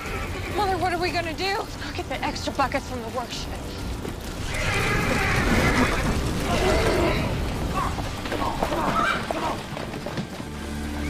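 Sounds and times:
horses whinnying: 0.0 - 0.8, 4.2 - 11.0.

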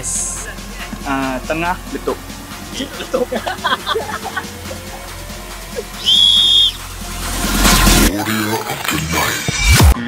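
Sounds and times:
background music: 0.0 - 10.0
referee's whistle blast: 6.0 - 6.8.

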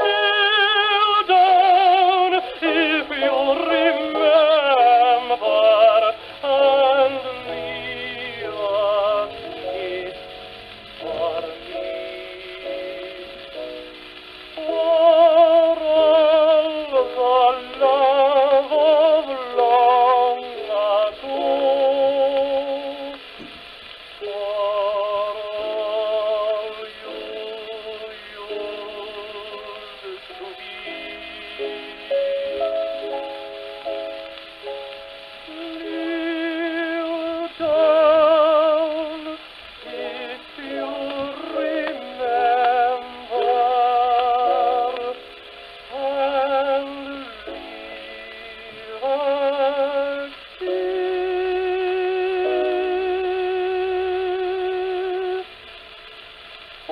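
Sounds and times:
piano accompaniment: 0.0 - 56.9
tenor singing a ballad: 0.0 - 56.9.

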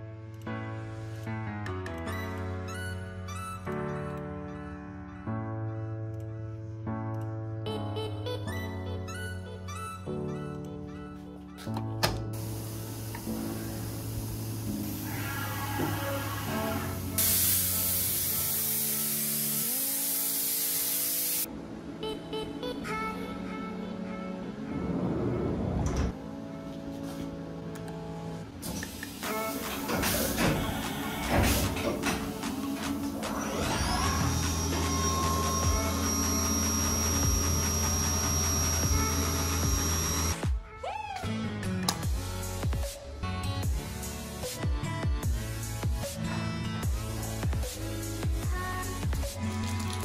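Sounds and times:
electronic music with sustained chords: 9.8 - 40.5
loud hiss: 12.4 - 21.5.

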